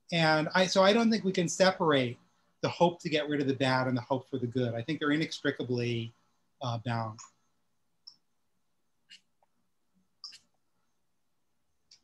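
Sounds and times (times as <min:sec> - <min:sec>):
man speaking: 0:00.0 - 0:07.4.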